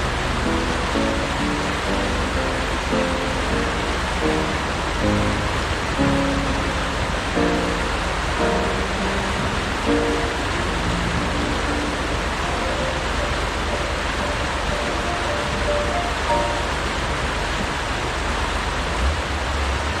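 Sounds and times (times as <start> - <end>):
faint instrumental music: 0.0 - 17.2.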